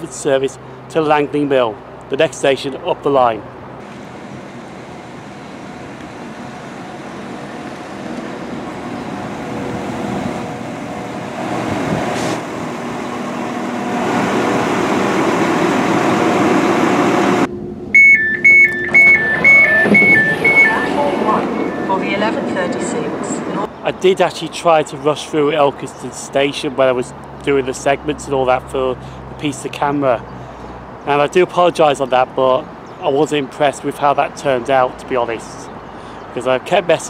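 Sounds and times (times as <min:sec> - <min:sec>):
train diesel engine: 0:03.8 - 0:27.0
two-tone door warning beeps: 0:17.9 - 0:22.4.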